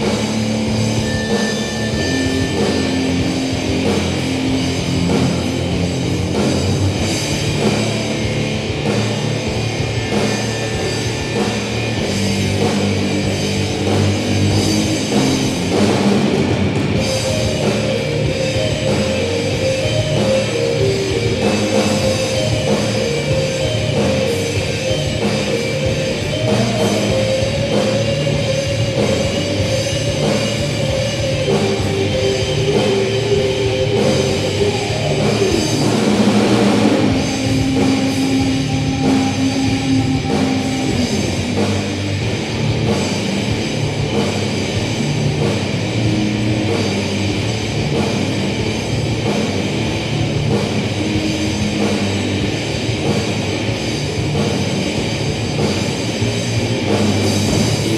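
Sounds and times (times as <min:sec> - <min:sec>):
bass guitar: 0:00.0 - 0:57.9
drum kit: 0:00.0 - 0:57.9
electric guitars: 0:00.0 - 0:57.9
heavy metal band playing: 0:00.0 - 0:57.9.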